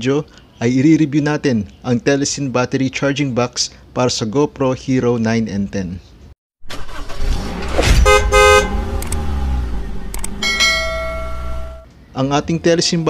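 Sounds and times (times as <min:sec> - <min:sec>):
road traffic: 0:06.6 - 0:12.1
vehicle rumbling past: 0:07.2 - 0:11.8
vehicle horns honking: 0:07.9 - 0:09.0.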